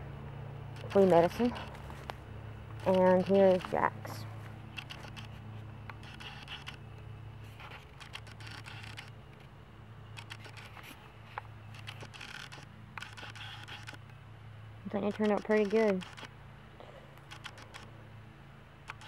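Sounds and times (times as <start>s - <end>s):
low steady hum: 0.0s - 19.0s
camera handling rustle: 0.8s - 2.2s, 2.8s - 3.8s, 4.4s - 6.8s, 7.4s - 9.5s, 10.2s - 14.1s, 15.2s - 16.3s, 17.2s - 17.9s.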